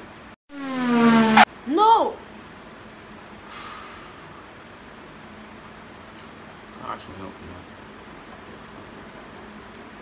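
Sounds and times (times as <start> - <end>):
person exhaling: 3.5 - 4.4.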